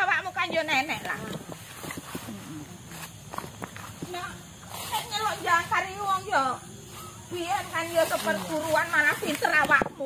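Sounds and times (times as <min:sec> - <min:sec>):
footsteps on dirt and grass: 0:00.6 - 0:10.0.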